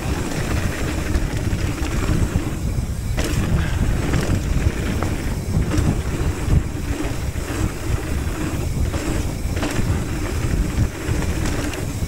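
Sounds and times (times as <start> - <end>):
bike knocks and rattles: 0.0 - 12.0
tyres on loose gravel: 0.0 - 12.0
wind buffeting microphone: 0.0 - 12.0.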